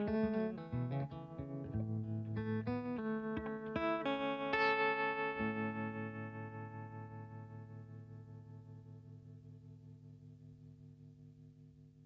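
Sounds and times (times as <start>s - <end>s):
electric guitar chord ringing: 0.0s - 9.8s.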